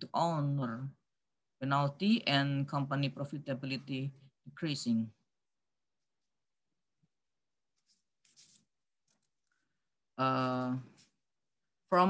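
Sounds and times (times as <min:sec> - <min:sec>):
faint short rustling: 0:07.8 - 0:09.6.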